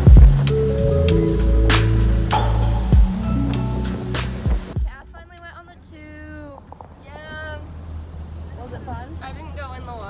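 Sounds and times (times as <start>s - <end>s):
motorboat engine rumble: 0.0s - 10.0s.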